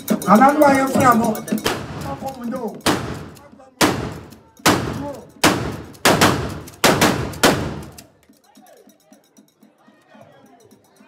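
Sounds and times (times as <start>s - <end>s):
loud sharp bangs: 2.8s - 8.0s.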